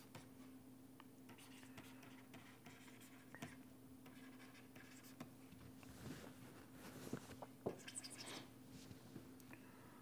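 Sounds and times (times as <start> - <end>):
faint steady hum: 0.0 - 10.0
stylus scribbling on tablet: 1.3 - 5.3.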